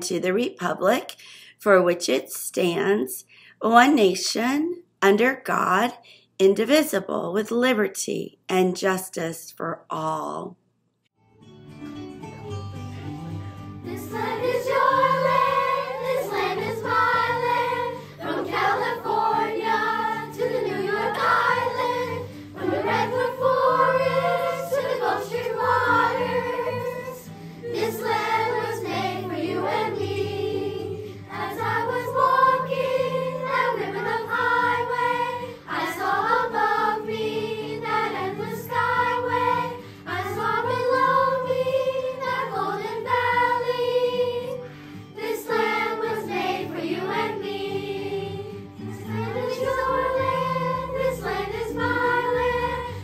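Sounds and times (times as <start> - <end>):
children's choir singing: 13.9 - 44.6, 45.2 - 53.0.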